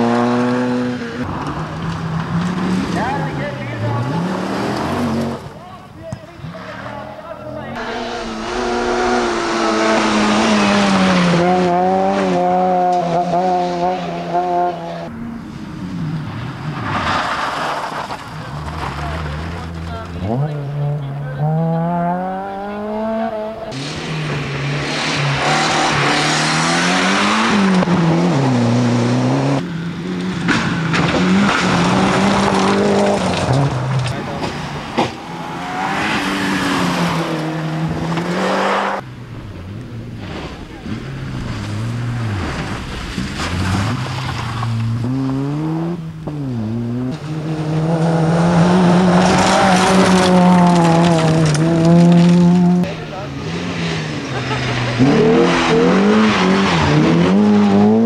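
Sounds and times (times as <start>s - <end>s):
rally car engines revving: 0.0s - 5.6s, 6.4s - 58.0s
gravel and tyre noise: 0.0s - 58.0s.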